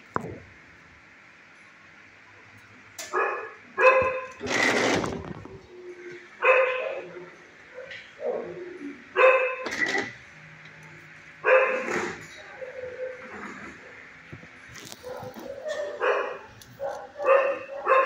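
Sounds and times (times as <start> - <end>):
dog barking: 3.1 - 4.3, 6.4 - 8.6, 9.2 - 9.7, 11.4 - 12.2, 14.9 - 18.0.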